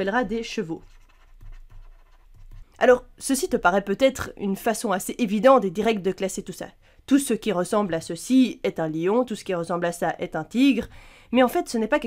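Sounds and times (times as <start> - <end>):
faint breathing: 10.9 - 11.3.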